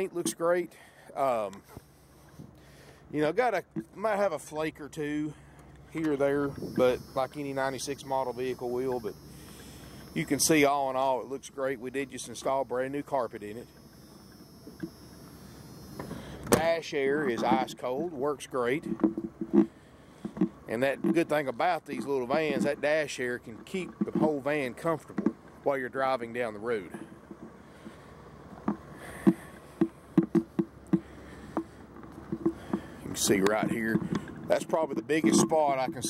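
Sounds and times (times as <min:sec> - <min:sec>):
faint steady hum: 0:00.0 - 0:36.0
thin high-pitched whine: 0:06.0 - 0:18.8.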